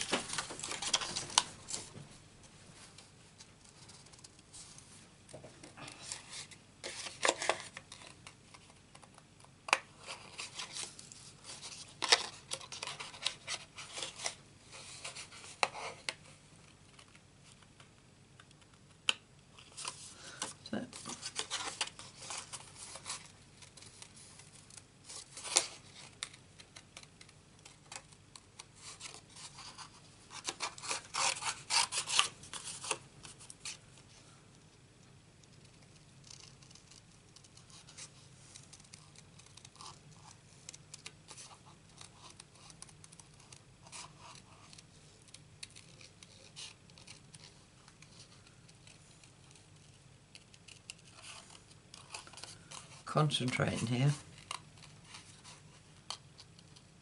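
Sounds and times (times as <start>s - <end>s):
paper rustling: 0.0s - 2.1s, 10.0s - 16.1s
scissors snipping paper: 21.2s - 33.0s.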